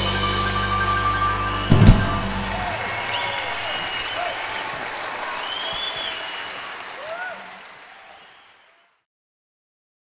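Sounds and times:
audience applauding and cheering: 1.3s - 9.1s
sliding calls from crowd: 1.7s - 8.7s.

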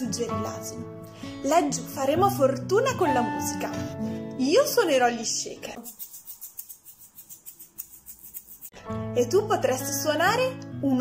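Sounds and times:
shaker rattling: 5.7s - 8.8s.

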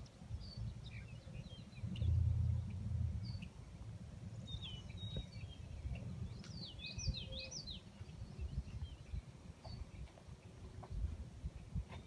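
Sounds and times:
songbirds singing: 0.0s - 12.0s
wind on microphone: 0.0s - 12.0s.

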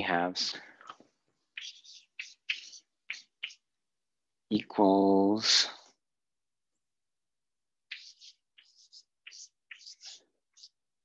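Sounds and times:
chalk scratching on chalkboard: 1.5s - 3.7s, 7.9s - 10.8s.

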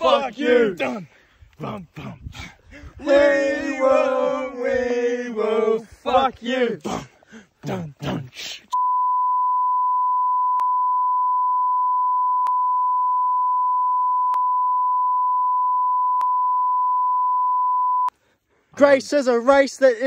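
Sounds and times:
censor bleep tone: 8.7s - 18.1s.

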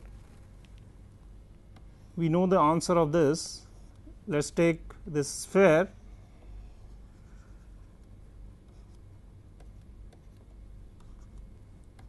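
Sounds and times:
low steady hum: 0.0s - 12.0s
stylus scratching on screen: 6.1s - 12.0s.

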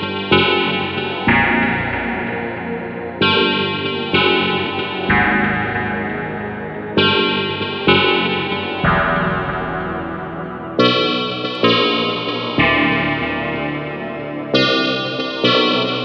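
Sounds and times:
synthesizer notes: 0.0s - 15.8s.

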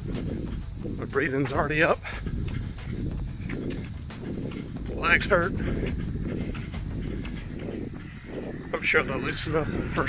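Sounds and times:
low rumble of mic movement: 0.0s - 10.0s
runner breathing heavily: 0.0s - 10.0s
running footfalls: 0.0s - 10.0s.

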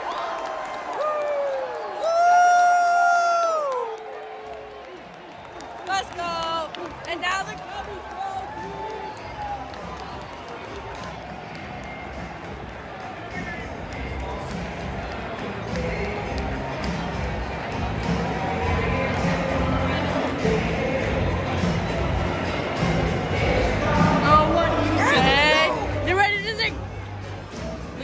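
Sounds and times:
crowd cheering and chattering: 0.0s - 28.0s
music over stadium speakers: 6.0s - 28.0s.

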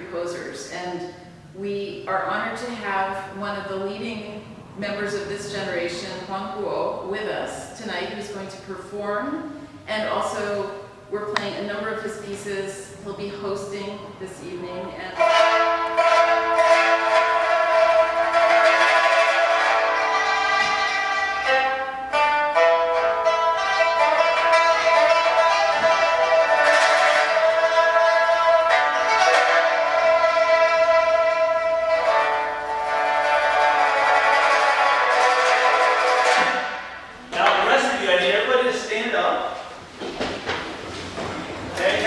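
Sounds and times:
pipa playing: 14.6s - 38.7s.

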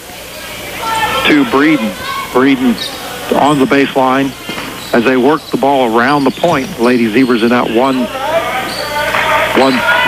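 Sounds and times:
commentator speaking: 0.8s - 10.0s.

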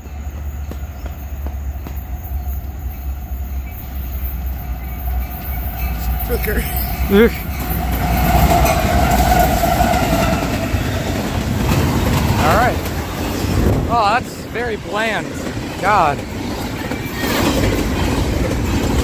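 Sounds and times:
container cars rolling: 0.0s - 19.0s
diesel locomotive engine rumble: 0.0s - 19.0s.

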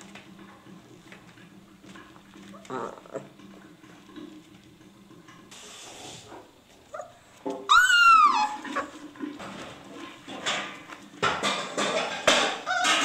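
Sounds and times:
puppies rustling on newspaper: 5.6s - 10.3s
puppy yelp: 6.9s - 8.9s, 12.6s - 13.0s.

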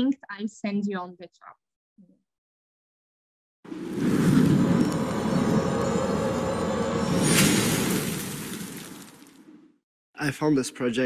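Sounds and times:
dense low rumble: 3.7s - 9.2s.

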